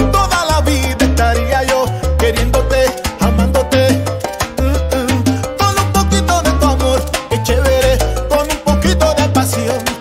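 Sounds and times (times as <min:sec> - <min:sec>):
salsa band playing: 0:00.0 - 0:10.0.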